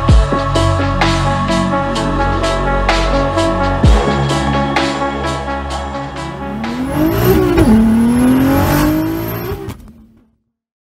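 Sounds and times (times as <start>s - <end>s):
background music with a beat: 0.0s - 8.4s
car engine revving: 6.0s - 10.3s.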